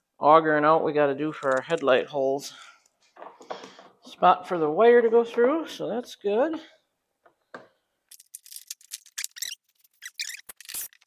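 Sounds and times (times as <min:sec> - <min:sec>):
plastic parts squeaking and scraping: 0:08.1 - 0:11.0.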